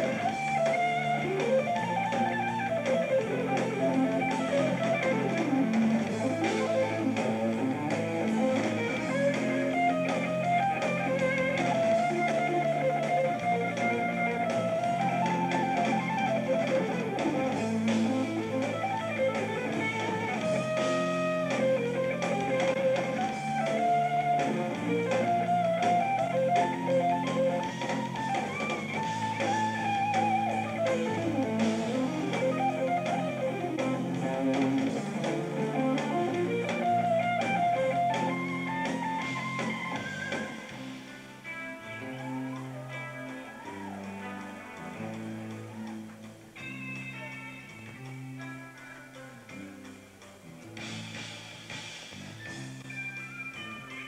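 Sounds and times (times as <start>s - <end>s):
bass guitar: 0.0s - 54.0s
drums: 0.0s - 54.0s
electric guitar lead lines: 0.0s - 54.0s.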